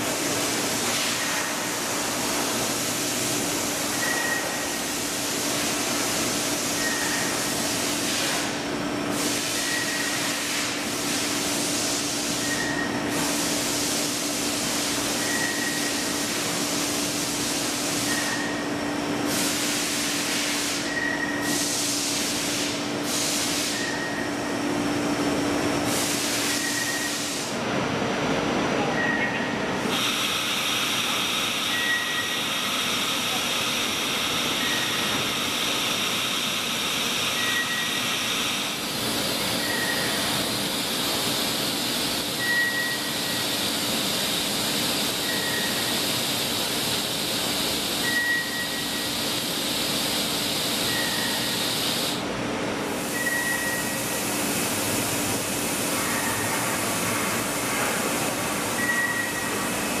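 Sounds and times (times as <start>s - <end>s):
machine hiss and hum: 0.0s - 60.0s
short high beep: 4.0s - 4.6s, 28.9s - 29.5s, 31.7s - 32.4s, 37.4s - 38.0s, 39.6s - 40.2s, 42.4s - 43.4s, 48.0s - 49.0s, 53.1s - 54.0s, 58.8s - 59.6s.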